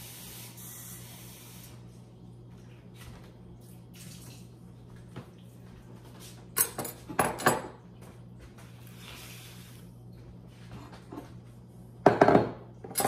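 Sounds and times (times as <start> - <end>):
kitchenware clattering: 6.5 - 7.8, 12.0 - 13.0.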